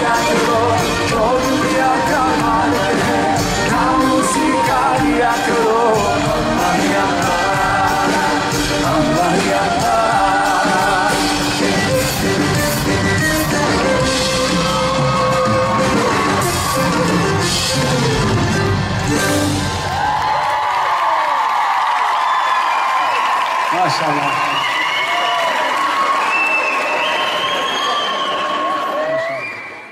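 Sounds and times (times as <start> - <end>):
crowd shouting: 0.0 - 12.2, 12.8 - 23.5
person singing: 0.0 - 18.4
live band playing: 0.0 - 20.3
crowd cheering: 0.0 - 29.9.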